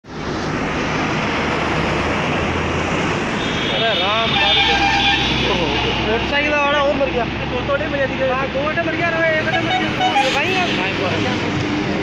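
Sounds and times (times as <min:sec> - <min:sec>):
heavy truck passing: 0:00.1 - 0:12.0.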